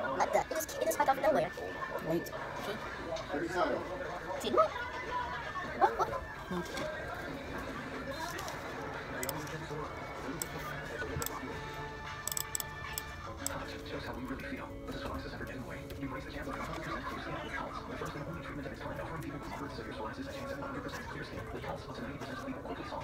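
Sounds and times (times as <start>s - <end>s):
sharp clicks: 12.3s - 13.1s
voices from a computer: 13.2s - 23.0s.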